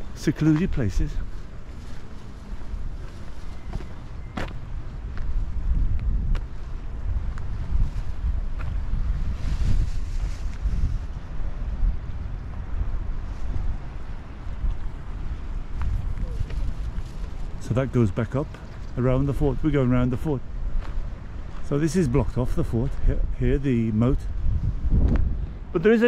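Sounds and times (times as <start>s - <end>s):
wind buffeting microphone: 0.0s - 25.7s.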